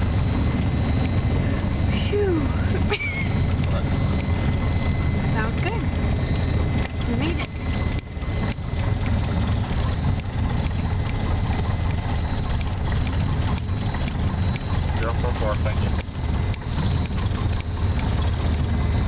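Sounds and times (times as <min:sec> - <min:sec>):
airplane engine droning: 0:00.0 - 0:19.0.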